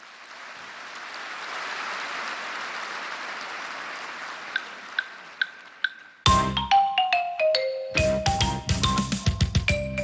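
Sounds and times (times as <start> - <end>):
audience applause in a hall: 0.0 - 6.2
marimba notes: 5.4 - 10.0.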